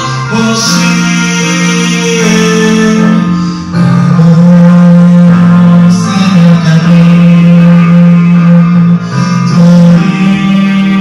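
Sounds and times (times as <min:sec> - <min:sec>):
man singing a held note: 0:00.0 - 0:03.3
karaoke backing track: 0:00.0 - 0:11.0.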